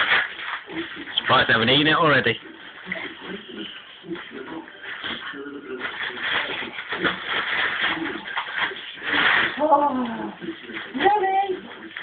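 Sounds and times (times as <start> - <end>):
wrapping paper rustling and tearing: 0.0 - 12.0.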